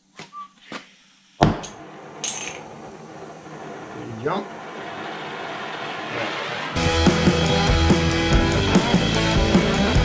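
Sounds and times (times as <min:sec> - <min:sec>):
gas torch hissing: 0:01.2 - 0:08.3
loud rock music: 0:06.8 - 0:10.0.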